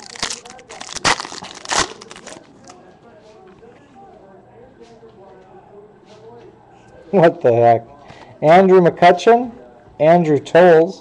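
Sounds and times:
foil wrapper tearing and crinkling: 0.0 - 2.8.

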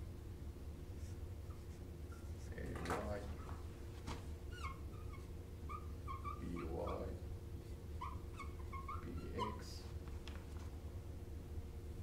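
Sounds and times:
marker squeaking on whiteboard: 4.5 - 7.2, 7.9 - 9.9.

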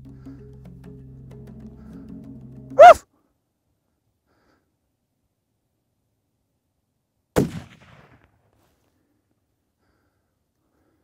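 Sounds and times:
rifle shot: 7.4 - 8.4.

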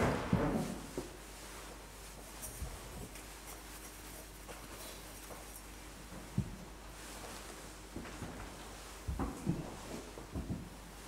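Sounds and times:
hands rustling cloth and objects: 0.0 - 11.0
low room hum: 0.0 - 11.0.

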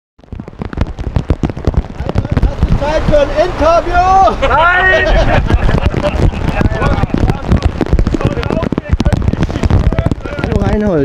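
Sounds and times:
heavy rain on tent fabric: 0.2 - 11.0.

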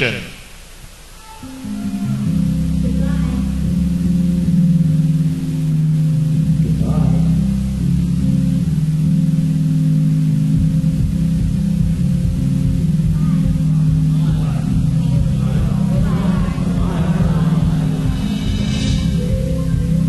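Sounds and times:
low sustained held tones: 0.4 - 20.0
deep rumble: 2.1 - 20.0
shimmering high notes: 13.2 - 20.0.

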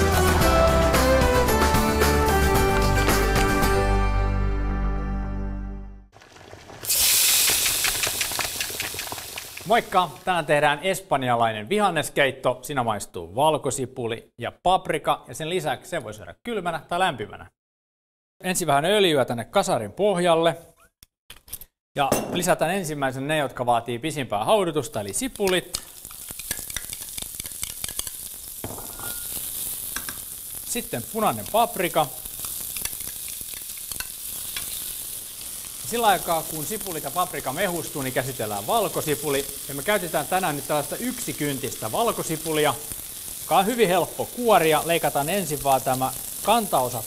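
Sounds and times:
food sizzling in a pan: 6.2 - 10.6, 24.9 - 47.0
spoon scraping a pan: 32.4 - 35.0.

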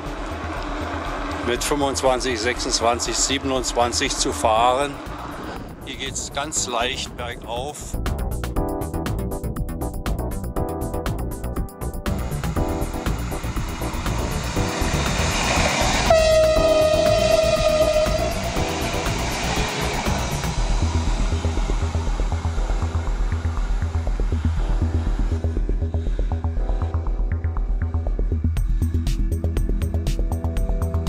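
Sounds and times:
rushing noise: 0.0 - 7.7, 11.8 - 26.4
music with steady beat: 0.0 - 31.0
train horn: 13.9 - 20.5.

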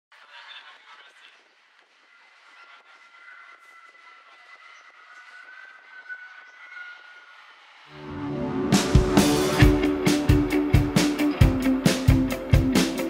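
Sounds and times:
train two-tone whine: 2.0 - 13.0.

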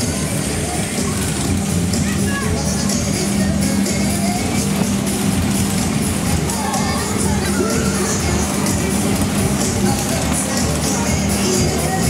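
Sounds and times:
loud music with steady beat: 0.0 - 12.0
ride cars circling: 0.0 - 12.0.

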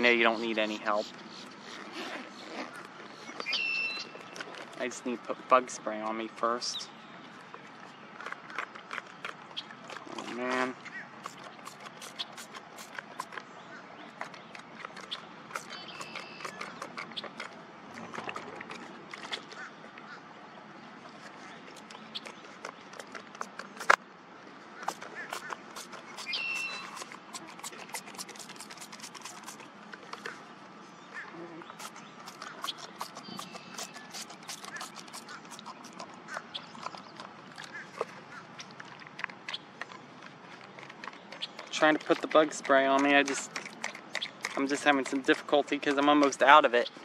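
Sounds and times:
clicks and rustling of handling gear: 1.6 - 5.2, 36.8 - 46.6.

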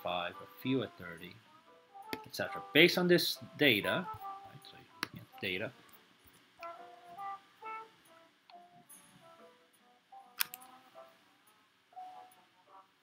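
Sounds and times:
plucked notes background music: 0.0 - 12.5
sharp click: 10.4 - 10.7.

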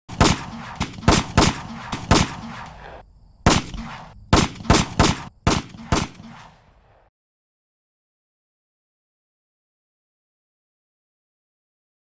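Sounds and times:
gunshots with echo: 0.1 - 7.1.

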